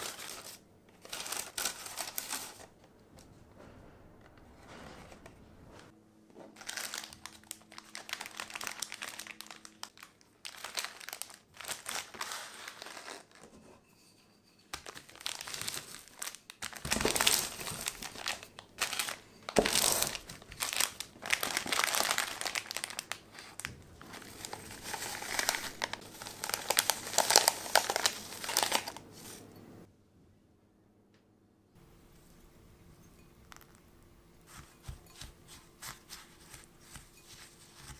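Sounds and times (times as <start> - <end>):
plastic wrappers crinkling: 0.0 - 2.8, 6.6 - 13.5, 14.7 - 29.4.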